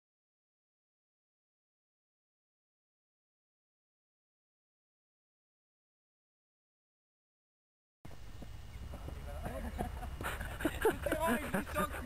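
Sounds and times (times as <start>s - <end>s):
faint distant voices: 8.2s - 12.0s.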